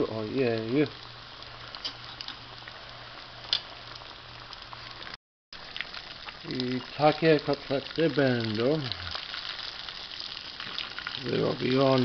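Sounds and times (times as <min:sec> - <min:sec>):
patties sizzling in oil: 0:00.0 - 0:12.0.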